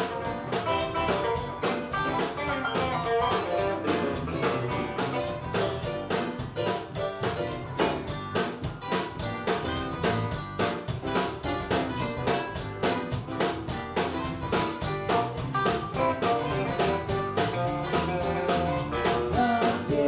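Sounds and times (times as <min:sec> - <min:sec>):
bass guitar: 0:00.0 - 0:20.0
drum kit beat: 0:00.0 - 0:20.0
electric guitar: 0:00.0 - 0:20.0.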